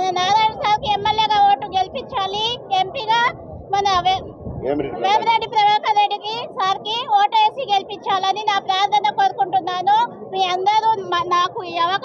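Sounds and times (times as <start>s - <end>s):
woman speaking impassionedly: 5.0s - 12.0s.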